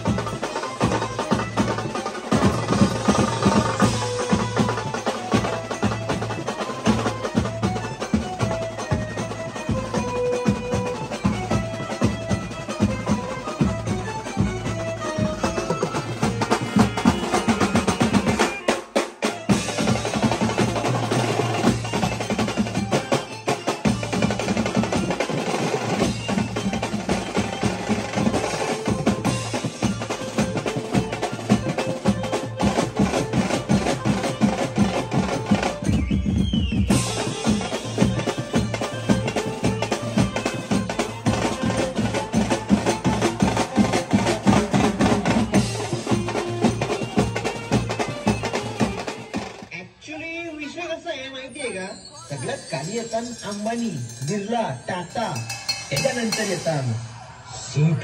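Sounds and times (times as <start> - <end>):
drums and cymbals: 0.0 - 49.7, 51.5 - 58.0
band playing dance rhythm: 0.0 - 58.0
keyboard: 0.0 - 58.0.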